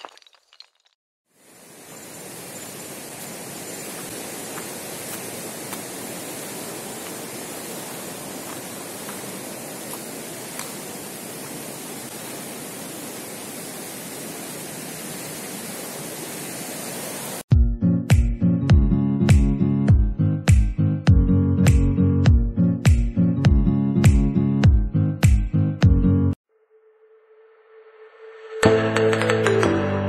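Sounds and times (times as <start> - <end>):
flowing water rushing: 1.5 - 17.4.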